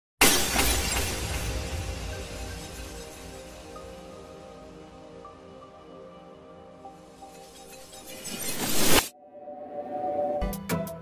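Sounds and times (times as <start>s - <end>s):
glass shattering: 0.2s - 4.1s
intro music: 1.3s - 11.0s.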